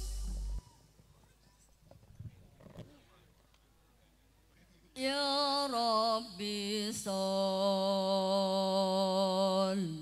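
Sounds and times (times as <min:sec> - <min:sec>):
faint indistinct voices: 0:00.3 - 0:05.2.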